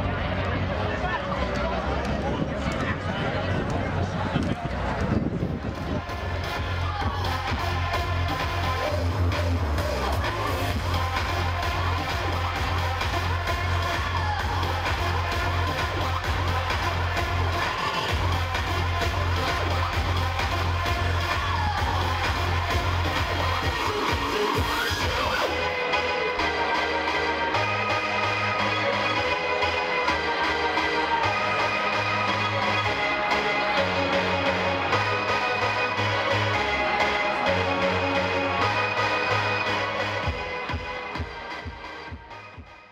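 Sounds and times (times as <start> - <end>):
electronic dance music: 0.0 - 42.9.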